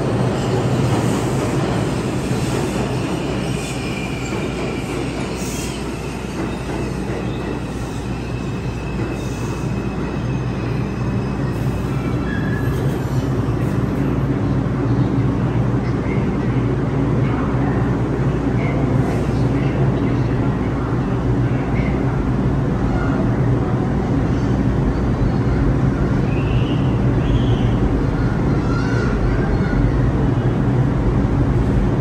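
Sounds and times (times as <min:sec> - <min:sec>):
subway train rumbling: 0:00.0 - 0:32.0.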